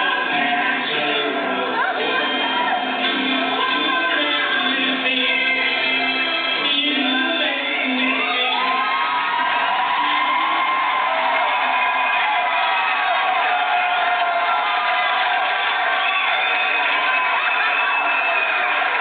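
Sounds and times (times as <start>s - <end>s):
many voices shouting: 0.0s - 4.2s, 8.0s - 19.0s
audience cheering and whooping: 1.5s - 4.3s, 7.8s - 19.0s.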